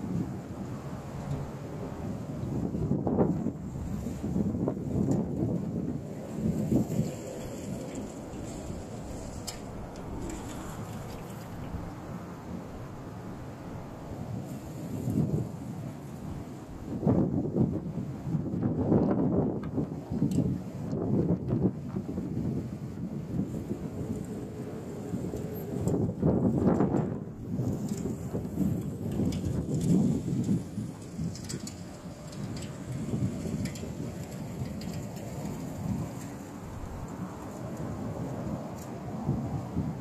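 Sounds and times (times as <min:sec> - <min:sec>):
gusty wind buffeting microphone: 0:00.0 - 0:40.0.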